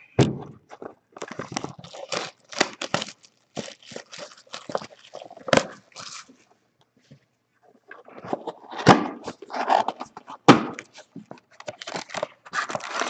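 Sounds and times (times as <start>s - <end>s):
shrink wrap crackling: 1.2s - 6.4s.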